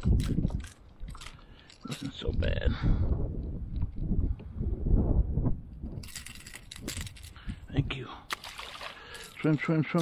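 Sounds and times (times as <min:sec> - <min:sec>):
wind buffeting microphone: 0:00.0 - 0:01.4, 0:02.1 - 0:08.0.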